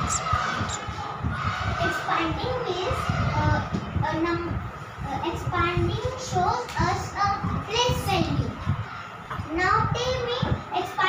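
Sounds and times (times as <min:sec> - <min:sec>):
low rumbling noise: 0:00.0 - 0:08.9
child talking: 0:01.8 - 0:08.6, 0:09.3 - 0:11.0.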